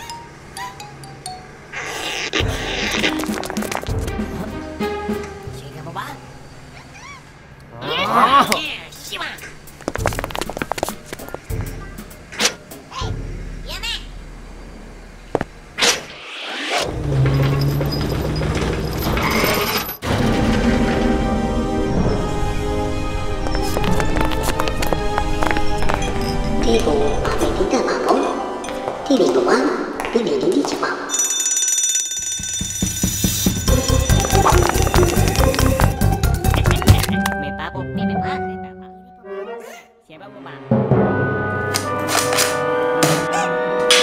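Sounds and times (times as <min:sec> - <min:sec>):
background music with low tone: 0:02.3 - 0:06.7, 0:20.0 - 0:30.6, 0:33.4 - 0:44.0
alarm bell ringing: 0:31.1 - 0:35.3
cartoon sound effects: 0:43.1 - 0:43.8.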